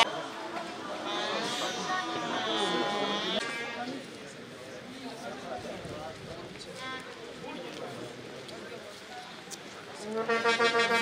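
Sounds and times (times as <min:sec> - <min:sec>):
spectators chattering: 0:00.0 - 0:11.0
drawn-out call: 0:01.0 - 0:03.4, 0:10.2 - 0:11.0.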